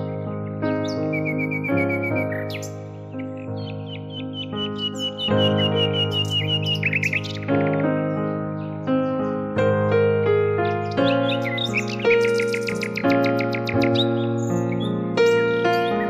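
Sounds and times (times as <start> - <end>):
bird chirping: 0.0 - 16.0
rapid repeated bird tweets: 0.0 - 16.0
sustained keyboard chords: 0.0 - 16.0.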